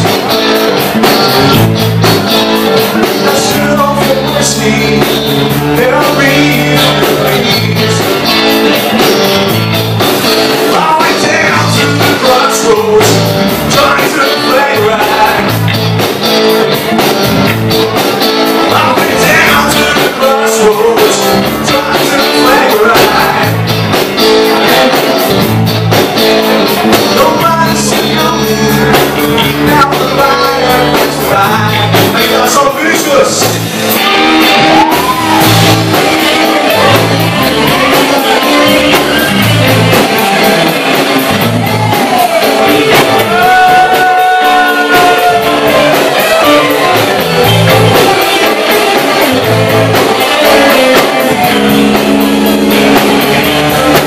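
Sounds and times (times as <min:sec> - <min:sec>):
bass guitar: 0:00.0 - 0:54.0
blues-rock band playing: 0:00.0 - 0:54.0
drum kit: 0:00.0 - 0:54.0
electric guitars: 0:00.0 - 0:54.0
person singing: 0:02.4 - 0:09.2, 0:10.4 - 0:15.9, 0:17.9 - 0:25.3, 0:26.6 - 0:54.0.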